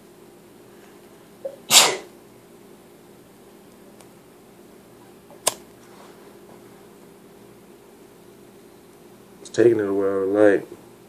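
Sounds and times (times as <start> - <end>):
low electrical hum: 0.0 - 11.0
sharp click: 5.4 - 5.6.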